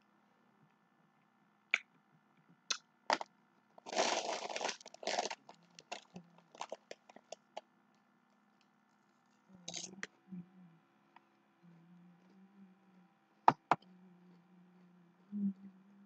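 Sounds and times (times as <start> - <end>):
crackling handling noise: 3.1 - 10.0.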